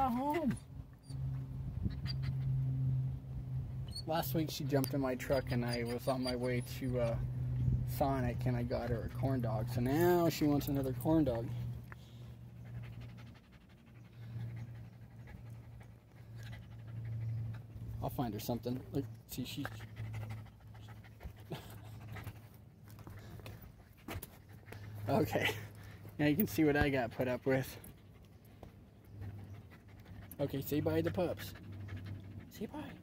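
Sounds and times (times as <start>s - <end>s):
low background hum: 0.0s - 33.0s
dog panting: 4.2s - 33.0s.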